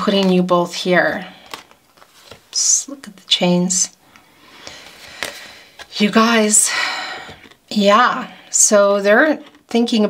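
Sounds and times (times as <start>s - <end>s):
cards rustling on wooden table: 1.2s - 2.7s, 4.0s - 6.1s.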